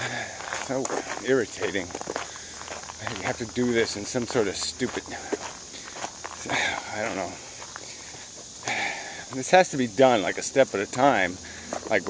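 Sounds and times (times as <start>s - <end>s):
person speaking: 0.0s - 2.1s, 3.0s - 7.6s
footsteps on woodland path: 0.0s - 12.0s.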